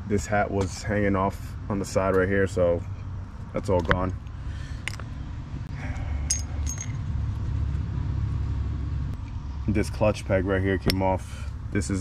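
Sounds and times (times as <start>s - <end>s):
steady low rumble: 0.0s - 12.0s
light metal clinks: 5.9s - 7.0s.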